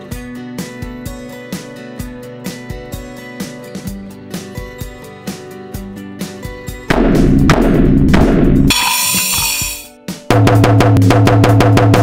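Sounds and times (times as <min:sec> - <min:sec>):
cymbal crash: 0:08.7 - 0:09.9
toy drum hits: 0:08.7 - 0:09.9.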